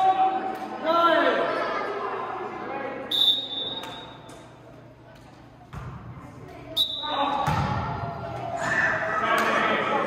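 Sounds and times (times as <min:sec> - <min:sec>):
volleyball slap: 0:05.7 - 0:06.6, 0:07.2 - 0:08.5.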